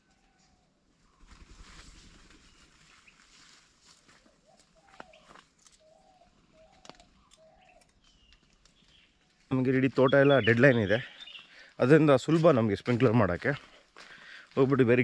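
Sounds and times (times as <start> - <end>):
footsteps on dry leaves: 2.0 - 5.9, 12.3 - 15.0
distant bird calls: 4.2 - 12.2.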